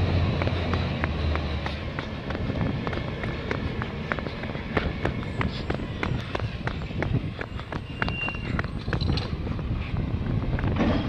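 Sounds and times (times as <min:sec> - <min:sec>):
running footsteps on concrete: 0:00.0 - 0:10.8
truck engine running: 0:00.0 - 0:11.0.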